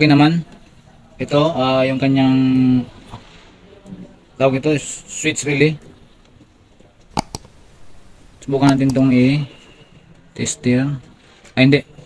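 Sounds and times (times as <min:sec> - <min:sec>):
sharp clicks of test clip: 0:07.1 - 0:07.6.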